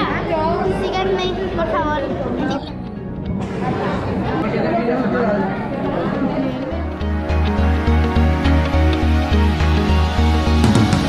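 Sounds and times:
crowd chatter: 0.0s - 11.0s
background music with beat: 6.7s - 11.0s.

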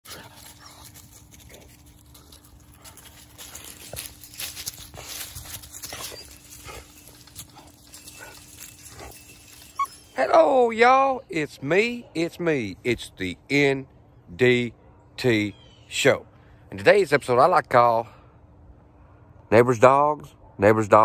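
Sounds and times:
dogs making soft noises: 0.1s - 10.3s.

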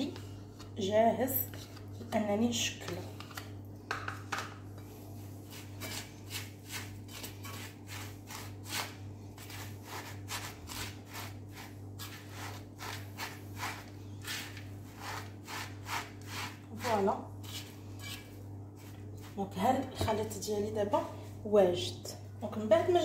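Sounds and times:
spatula scraping in a pan: 0.0s - 2.2s, 5.2s - 19.5s
steady low hum: 0.0s - 23.0s.

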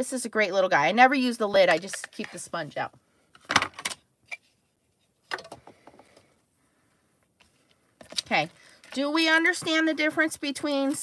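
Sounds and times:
plastic box set down with rattle: 3.4s - 4.0s.

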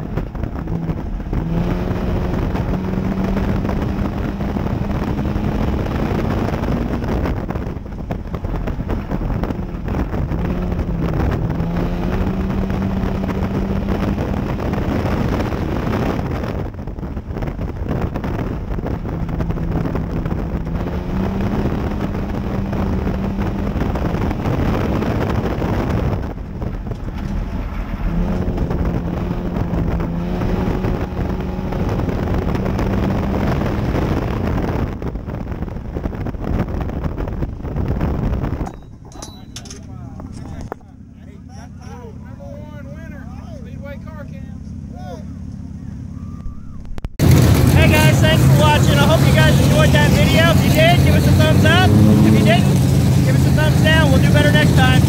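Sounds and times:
wind noise: 0.0s - 41.5s, 45.6s - 55.0s
dirt road noise: 0.0s - 55.0s
race car engine: 0.0s - 55.0s.

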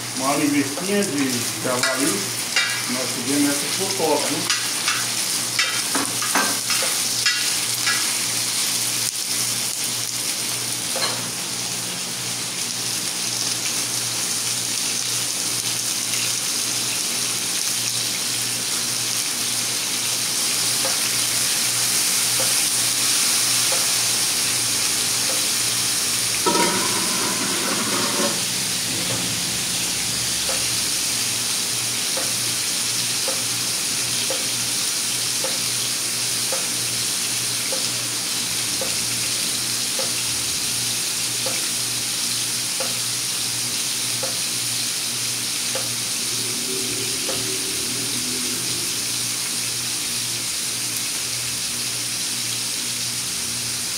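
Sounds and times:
meat sizzling in hot fat: 0.0s - 53.9s.

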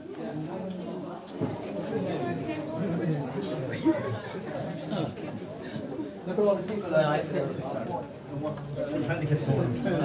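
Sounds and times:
indistinct chatter: 0.0s - 10.0s.

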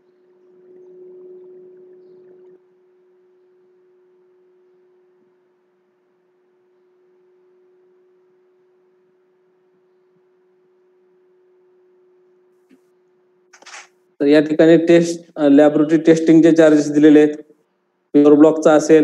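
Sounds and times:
electrical hum: 13.6s - 17.5s, 18.2s - 19.0s.

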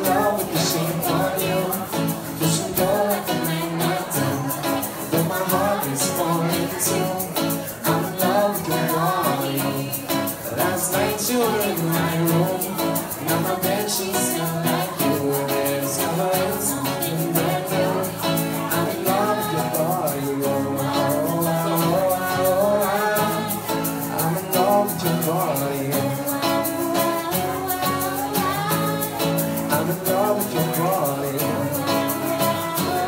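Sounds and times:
acoustic guitar strumming: 0.0s - 33.0s
egg shaker: 0.0s - 33.0s
man and woman singing: 0.0s - 33.0s.

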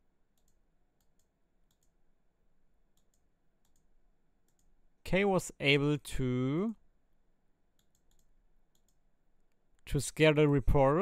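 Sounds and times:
faint clicks: 0.3s - 2.0s, 2.9s - 4.7s, 7.8s - 9.6s.

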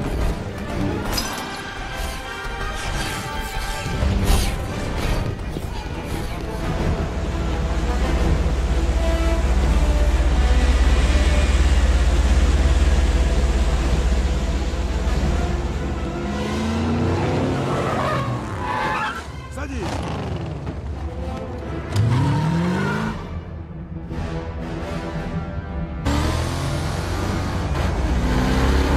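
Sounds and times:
music: 0.0s - 28.9s.

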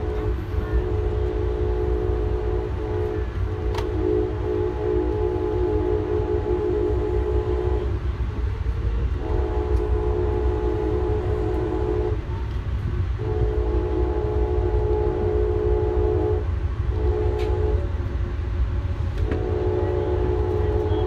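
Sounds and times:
locomotive air horn blasts: 0.0s - 8.4s, 9.0s - 12.4s, 13.2s - 18.1s, 19.2s - 21.0s
train rumbling on rails: 0.0s - 21.0s.

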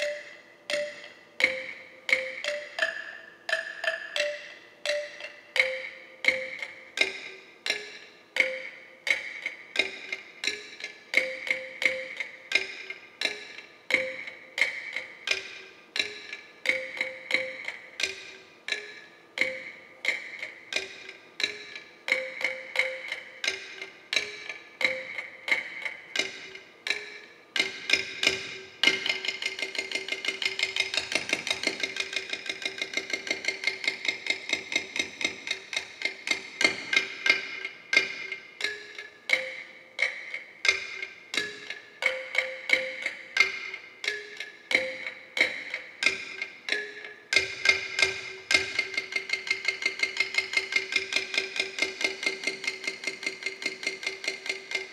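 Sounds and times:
bamboo percussion knocks: 0.0s - 10.6s, 11.2s - 54.9s.

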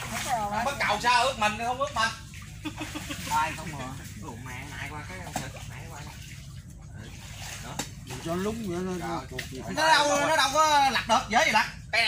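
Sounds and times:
floodwater running and splashing: 0.0s - 12.0s.

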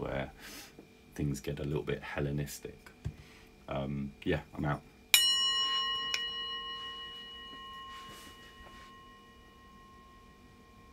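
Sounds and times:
singing bowl ringing: 5.1s - 10.9s.

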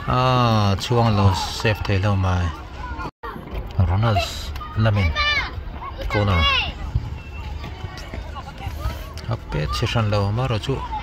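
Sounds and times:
players and spectators calling out: 0.0s - 11.0s.

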